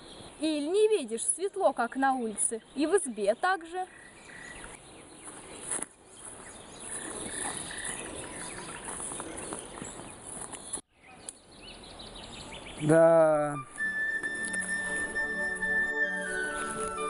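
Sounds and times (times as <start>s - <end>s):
crackling rustle: 4.4s - 10.8s, 16.2s - 17.0s
short high chirps: 13.4s - 17.0s.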